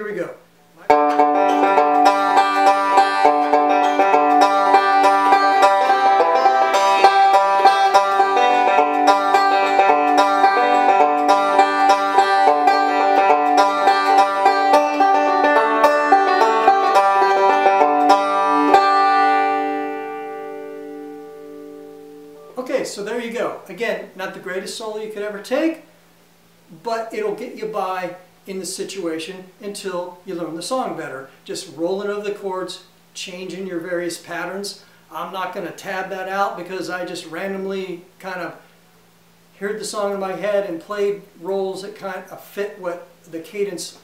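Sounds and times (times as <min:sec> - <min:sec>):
man speaking: 0:00.0 - 0:01.0, 0:22.5 - 0:25.9, 0:26.7 - 0:38.6, 0:39.6 - 0:44.0
banjo picking: 0:00.8 - 0:22.6.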